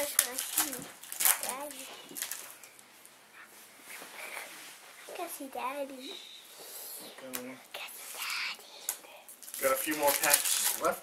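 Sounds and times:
high-pitched child's voice: 0.0 - 2.1, 5.1 - 6.3, 7.8 - 8.7
trading cards and wrappers rustling: 0.0 - 2.9, 8.9 - 11.0.

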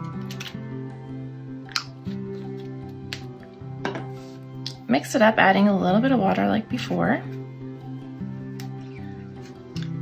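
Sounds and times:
soft background music: 0.0 - 10.0
plastic dropper bottle clicks: 1.7 - 2.0.

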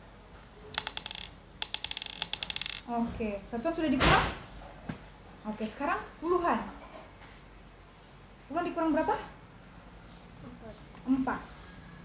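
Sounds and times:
beads clicking and rattling: 0.8 - 2.9.

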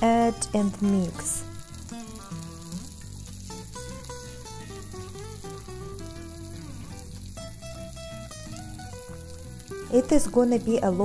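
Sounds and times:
background music with held notes: 0.0 - 11.0
vegetables sizzling in oil: 0.0 - 11.0.

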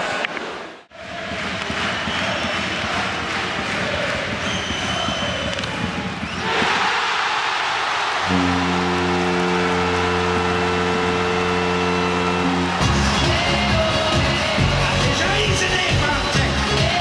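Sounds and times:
crowd cheering: 0.0 - 17.0
goal horn long tone: 8.2 - 15.7
arena music: 8.3 - 17.0.

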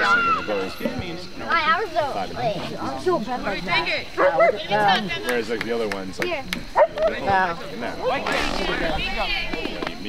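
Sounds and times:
spectators talking: 0.0 - 10.0.

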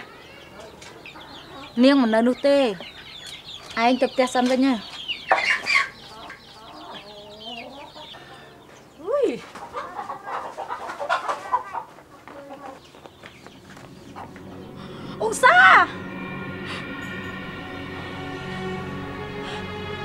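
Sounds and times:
chickens clucking: 0.0 - 15.2.

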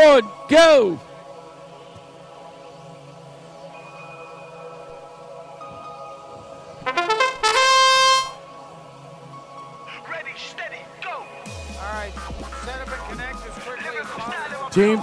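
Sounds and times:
electronic horn blare: 6.9 - 8.4.

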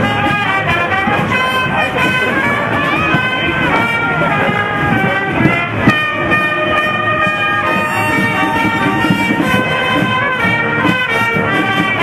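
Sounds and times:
brass band sustained chord: 0.0 - 12.0.

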